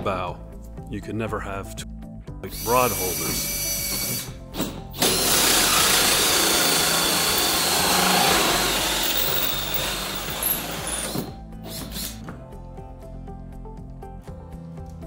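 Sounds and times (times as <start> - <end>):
power drill running: 2.6 - 4.3, 4.9 - 11.3.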